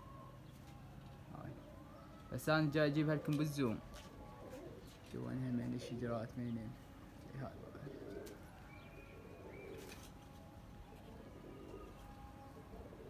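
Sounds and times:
birds chirping: 0:00.0 - 0:13.0
pigeons cooing: 0:00.0 - 0:13.0.

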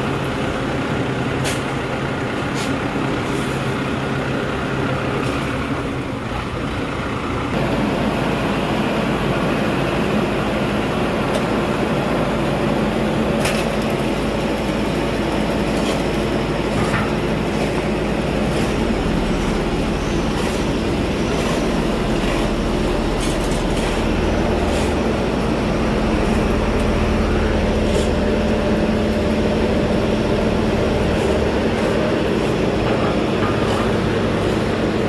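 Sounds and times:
diesel engine droning: 0:00.0 - 0:35.0.

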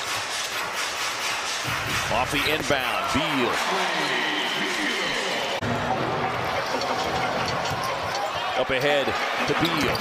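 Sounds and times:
crowd murmur: 0:03.6 - 0:10.0.

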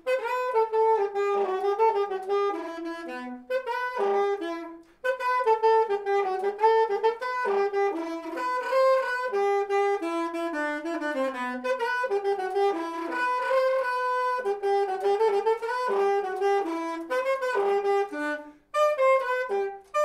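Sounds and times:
alto saxophone solo melody: 0:00.0 - 0:20.0.

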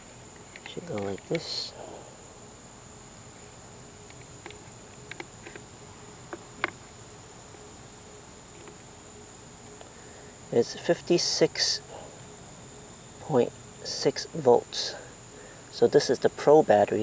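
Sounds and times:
high-pitched insect drone: 0:00.0 - 0:17.0.

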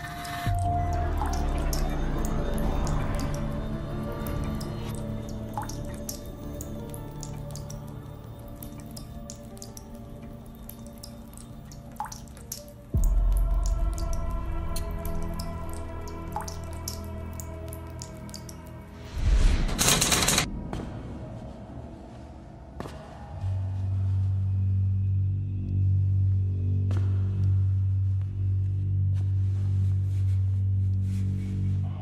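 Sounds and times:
water dripping: 0:00.0 - 0:19.2
sombre film score: 0:00.0 - 0:32.0.

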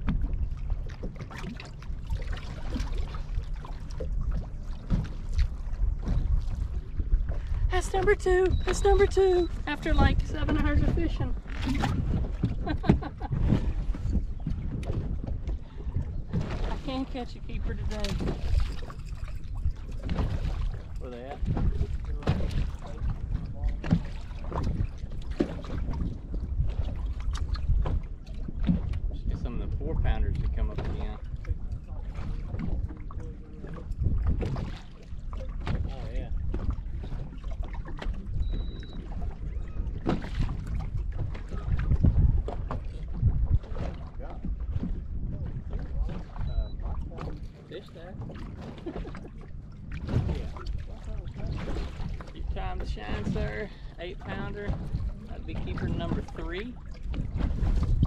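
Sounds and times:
water slapping against hull: 0:00.0 - 0:58.0
wind buffeting microphone: 0:00.0 - 0:58.0.

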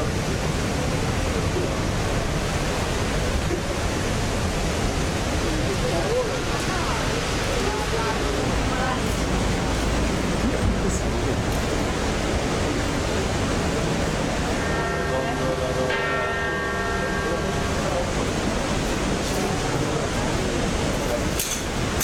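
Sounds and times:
church bell ringing: 0:14.6 - 0:19.5.

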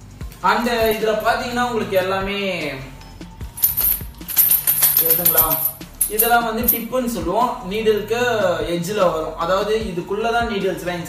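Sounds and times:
metal parts rattling in plastic bag: 0:03.6 - 0:06.8.

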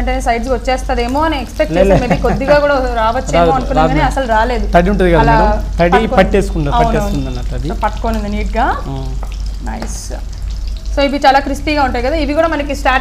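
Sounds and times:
oil sizzling: 0:00.0 - 0:13.0
person talking: 0:01.6 - 0:04.2, 0:05.1 - 0:08.0.

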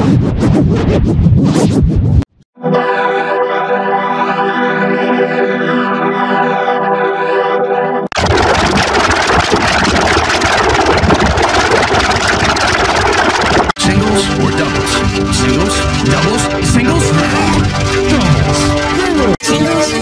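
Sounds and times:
loud distorted noise wash: 0:08.1 - 0:19.4.

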